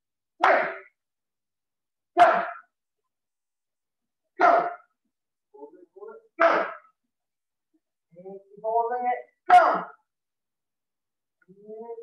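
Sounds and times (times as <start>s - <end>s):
man shouting: 0.4s - 0.9s, 2.2s - 2.7s, 4.4s - 4.9s, 6.3s - 6.9s, 8.7s - 10.0s.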